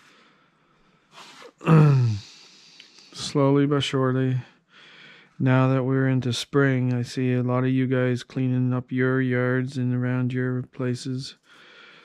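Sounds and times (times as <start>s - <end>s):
man clearing his throat: 1.6s - 2.3s
man breathing in sharply: 11.4s - 12.0s.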